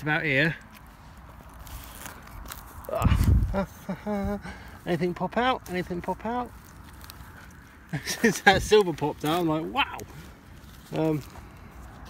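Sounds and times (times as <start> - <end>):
spade scraping straw and earth: 0.8 - 3.8, 5.6 - 12.0.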